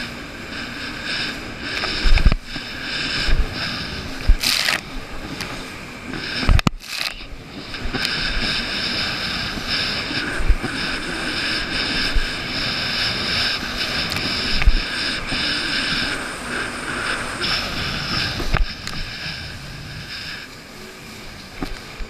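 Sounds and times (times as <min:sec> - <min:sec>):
hull thumping on waves: 0:00.0 - 0:20.2
jet ski engine: 0:00.0 - 0:22.0
rushing water: 0:00.0 - 0:22.0.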